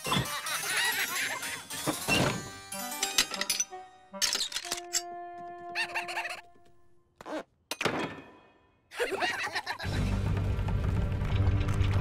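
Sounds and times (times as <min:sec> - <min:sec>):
cartoon squeak: 0:05.7 - 0:06.5.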